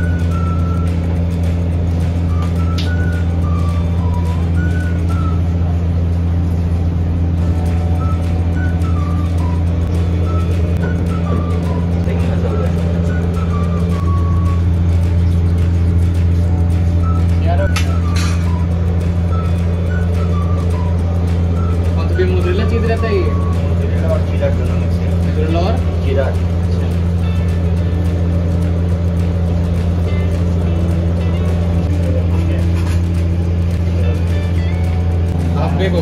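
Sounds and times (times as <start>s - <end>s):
low machinery hum: 0.0s - 36.0s
faint voices: 11.2s - 14.1s.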